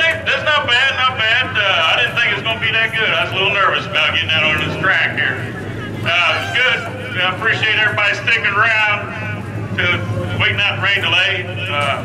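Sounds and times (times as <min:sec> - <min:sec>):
man talking into microphone: 0:00.0 - 0:12.0
low hum: 0:00.1 - 0:12.0.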